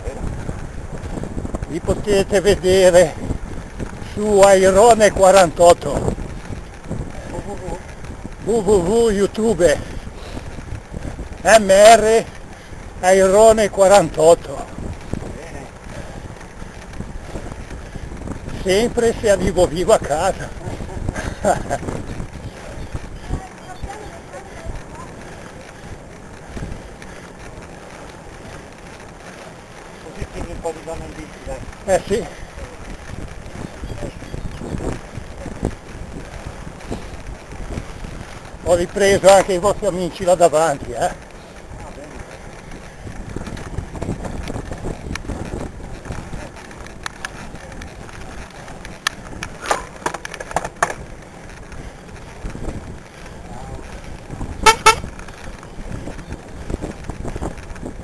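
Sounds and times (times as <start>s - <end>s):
wind rushing over microphone: 0.0s - 58.0s
vehicle horn toots: 54.6s - 55.2s.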